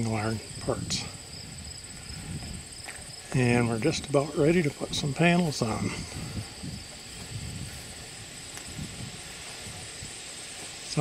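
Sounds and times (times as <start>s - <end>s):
crickets chirping: 0.0s - 11.0s
wind noise on microphone: 0.0s - 11.0s.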